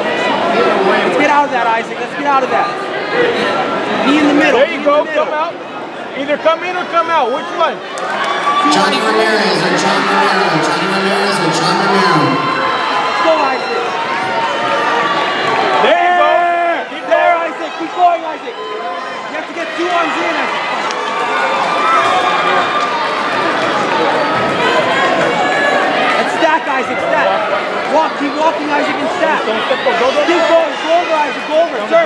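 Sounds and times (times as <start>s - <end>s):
crowd hubbub: 0.0s - 32.0s
loud clear voice: 4.0s - 4.9s.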